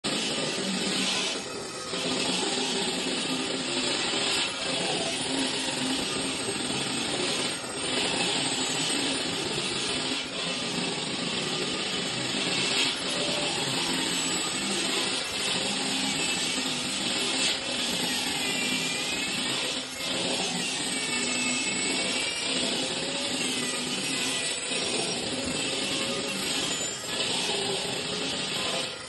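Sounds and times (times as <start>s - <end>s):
die grinder cutting stone: 0.0s - 29.0s.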